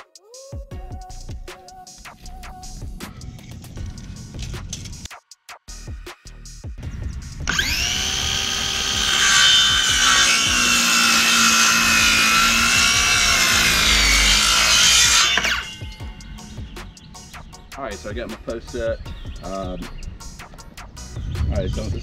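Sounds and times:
circular saw cutting wood: 0:07.4 - 0:18.8.

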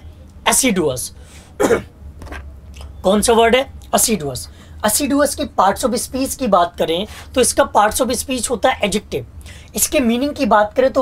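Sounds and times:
man clearing his throat: 0:01.6 - 0:01.9.

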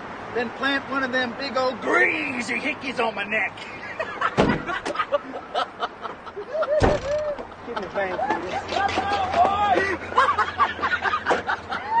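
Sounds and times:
men chuckling: 0:03.6 - 0:08.9, 0:09.8 - 0:12.0.

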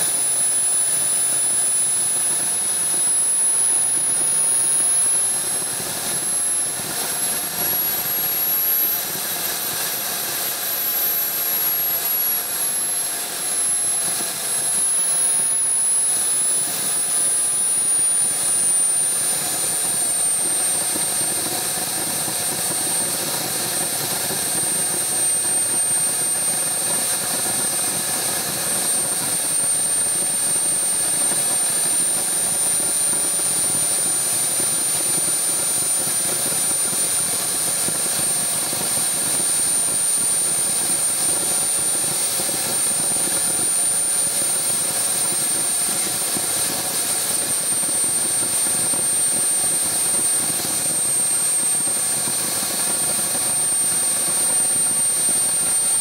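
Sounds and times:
turbine jet engine idling: 0:00.0 - 0:56.0.

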